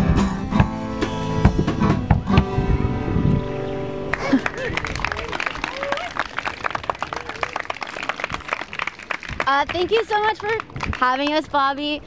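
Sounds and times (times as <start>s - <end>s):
audience applauding: 4.1s - 11.2s.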